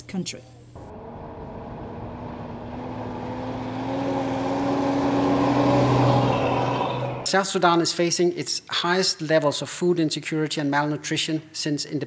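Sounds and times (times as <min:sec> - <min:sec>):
bus engine passing by: 0:00.8 - 0:07.3.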